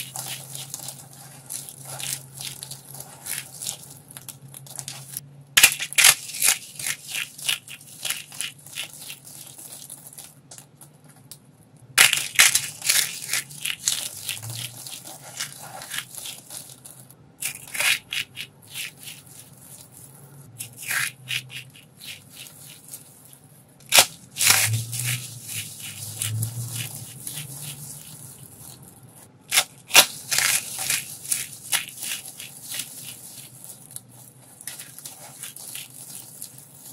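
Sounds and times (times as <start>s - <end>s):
soap shavings crunching in hands: 0.0s - 10.8s, 12.0s - 36.9s.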